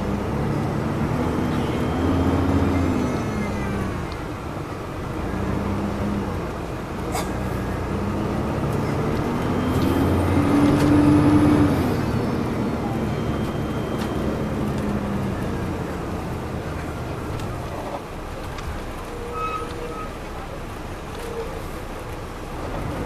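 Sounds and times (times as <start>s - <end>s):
bus engine drone from inside: 0.0s - 23.0s
road noise: 0.0s - 23.0s.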